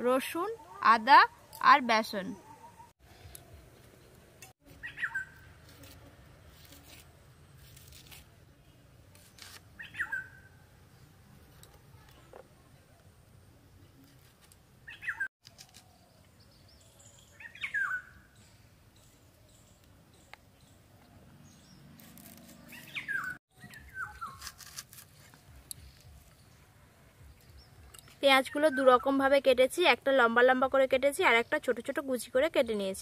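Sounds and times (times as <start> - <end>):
bird chirps: 4.8 - 5.5, 9.8 - 10.6, 14.9 - 24.5
knife slicing shallots: 24.2 - 25.5.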